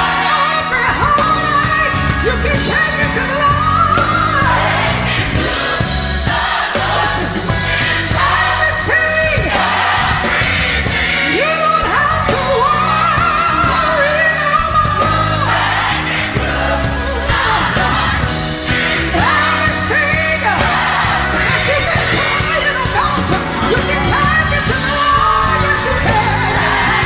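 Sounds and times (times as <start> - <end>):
instrumental backing with bass: 0.0 - 27.0
person singing gospel song: 0.0 - 27.0.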